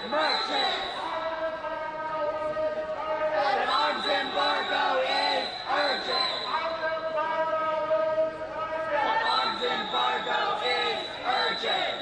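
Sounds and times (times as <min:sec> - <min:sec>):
protesters shouting: 0:03.1 - 0:06.5, 0:08.8 - 0:12.0.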